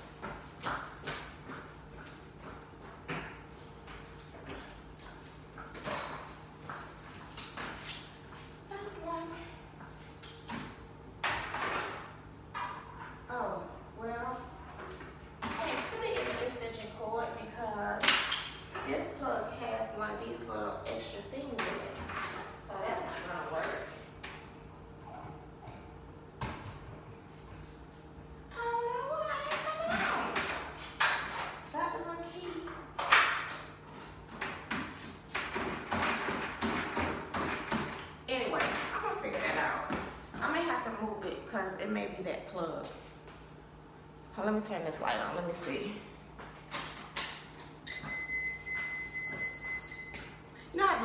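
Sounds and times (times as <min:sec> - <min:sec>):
woman's voice: 0:08.7 - 0:09.7, 0:15.4 - 0:18.0, 0:18.8 - 0:22.0, 0:22.6 - 0:24.0, 0:38.3 - 0:43.0, 0:44.3 - 0:46.1, 0:50.7 - 0:51.0
knocks and thumps on treadmill: 0:34.4 - 0:40.6.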